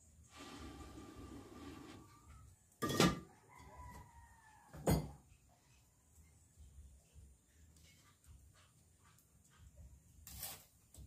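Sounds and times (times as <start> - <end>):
rooster crowing: 3.2 - 5.0.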